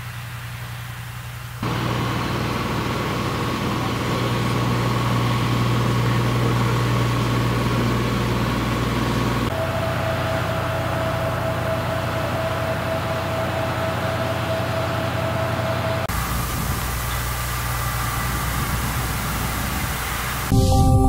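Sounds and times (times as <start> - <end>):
vehicle engine hum: 0.0 - 20.5.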